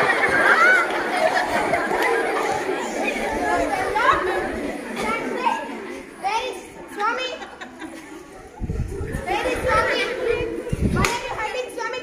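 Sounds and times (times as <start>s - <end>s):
girls chattering: 0.0s - 12.0s.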